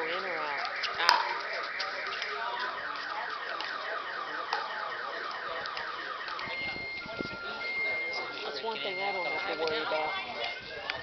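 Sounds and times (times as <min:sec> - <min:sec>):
alternating high and low alarm tones: 0:00.0 - 0:10.8
electronic alarm rising warble: 0:00.0 - 0:10.8.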